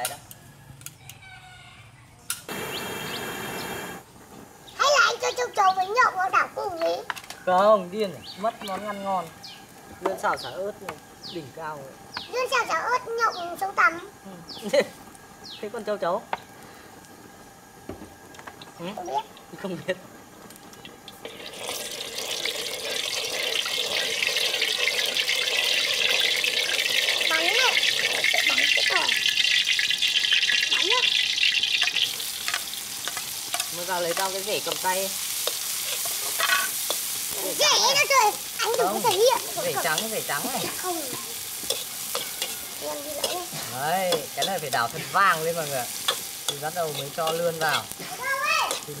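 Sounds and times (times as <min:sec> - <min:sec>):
birds chirping: 0:01.0 - 0:06.4, 0:07.2 - 0:13.7, 0:14.3 - 0:16.8
lemongrass sizzling in hot oil: 0:02.3 - 0:49.0
rush of burning gas: 0:02.5 - 0:04.6.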